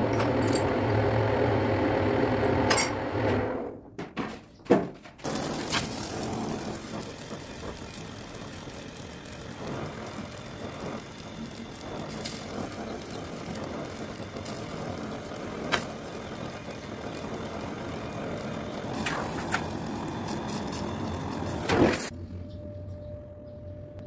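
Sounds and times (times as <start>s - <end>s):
gas torch flame hissing: 5.2s - 22.1s.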